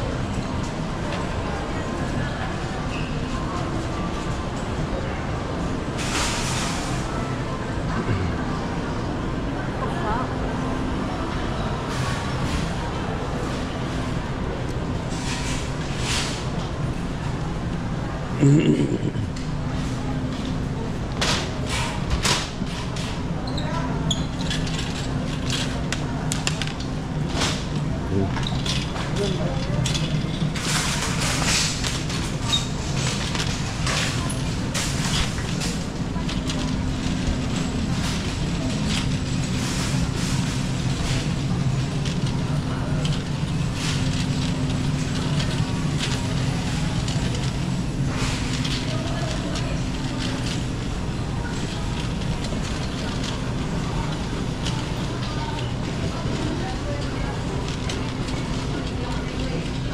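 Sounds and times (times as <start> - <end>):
indistinct voices of shoppers: 0.0 - 59.9.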